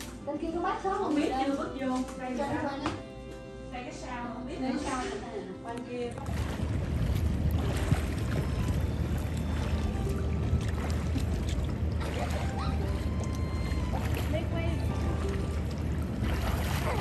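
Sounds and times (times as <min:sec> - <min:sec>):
water lapping and splashing: 0:04.7 - 0:17.0
steady low rumble: 0:06.2 - 0:17.0.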